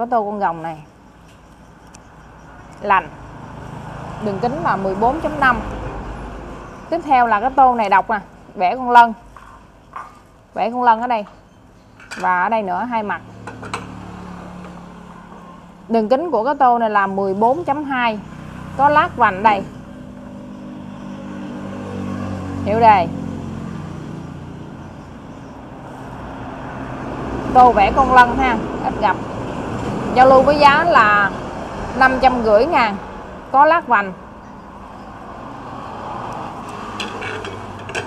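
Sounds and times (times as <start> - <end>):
road traffic passing: 0.0 - 38.0.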